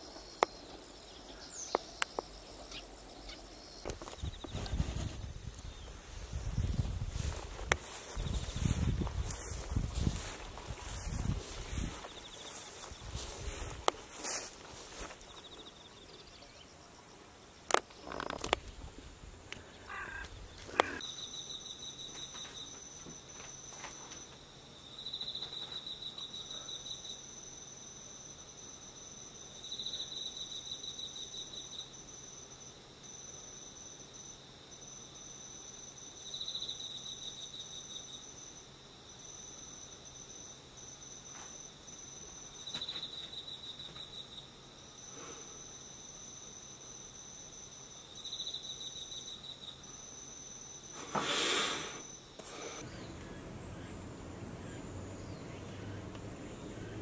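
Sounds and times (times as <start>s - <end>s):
insect pulsed call: 0.0s - 57.0s
insect high trill: 33.1s - 57.0s.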